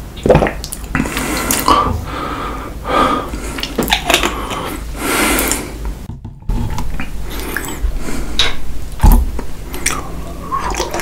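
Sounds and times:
gulping water: 0:00.0 - 0:05.6, 0:06.7 - 0:08.6, 0:09.6 - 0:11.0
wet mouth clicks: 0:00.2 - 0:01.8, 0:03.6 - 0:04.7, 0:05.3 - 0:05.7, 0:08.4 - 0:08.6
man breathing out heavily: 0:01.2 - 0:05.8.

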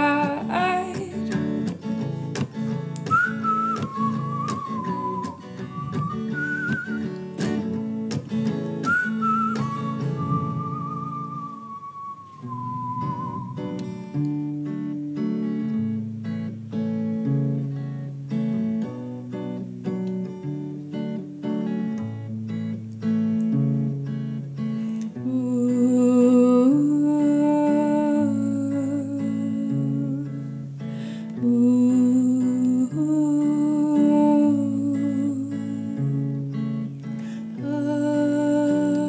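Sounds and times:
wordless singing voice: 0:00.0 - 0:01.5, 0:25.2 - 0:30.4, 0:31.3 - 0:36.2, 0:37.4 - 0:39.0.

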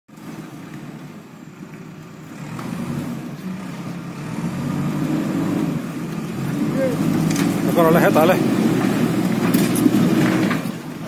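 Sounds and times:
diesel engine running: 0:00.1 - 0:11.0.

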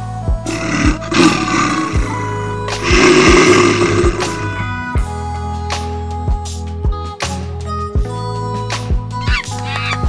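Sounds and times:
background music with steady beat: 0:00.0 - 0:10.0
elephant roars: 0:00.5 - 0:05.0.

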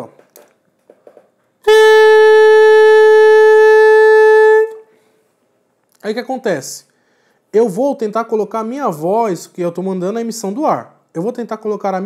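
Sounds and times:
saxophone mouthpiece steady note: 0:01.6 - 0:05.0.

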